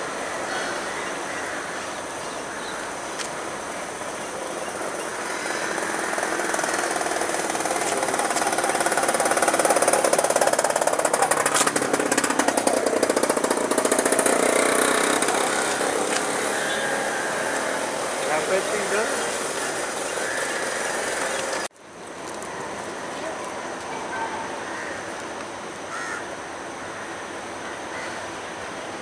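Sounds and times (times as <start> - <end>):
passenger train rattling past: 4.6 - 21.7.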